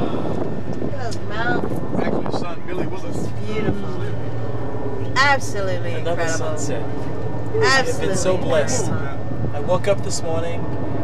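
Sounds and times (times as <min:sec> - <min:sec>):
motorboat engine drone: 0:00.0 - 0:11.0
woman speaking: 0:00.9 - 0:01.7, 0:03.4 - 0:03.9, 0:05.2 - 0:06.5, 0:07.6 - 0:08.9.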